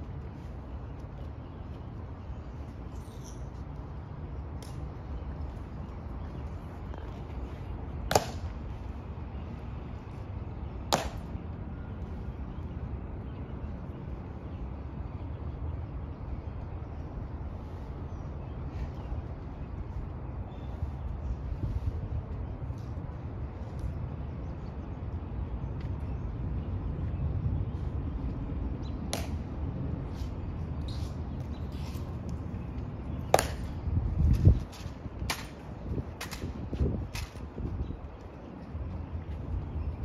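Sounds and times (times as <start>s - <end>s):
low outdoor hum: 0.0s - 40.0s.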